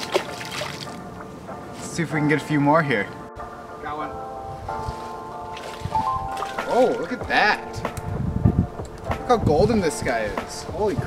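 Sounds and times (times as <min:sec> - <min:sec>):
music with sustained chords: 0:00.0 - 0:11.0.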